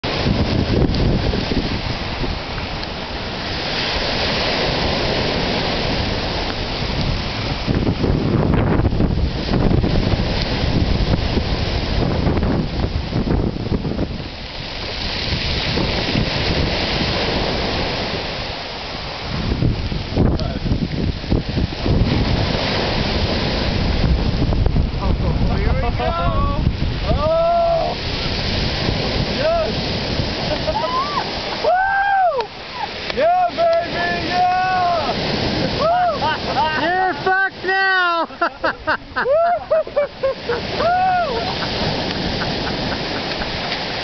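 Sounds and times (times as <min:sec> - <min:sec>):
wind buffeting microphone: 0:00.0 - 0:37.6, 0:38.3 - 0:44.0
heavy surf breaking on beach: 0:00.0 - 0:44.0.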